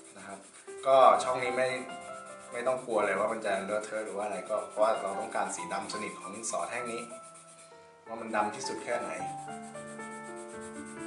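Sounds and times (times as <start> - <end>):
pencil scribbling on paper: 0.0 - 11.0
soft background music: 0.0 - 11.0.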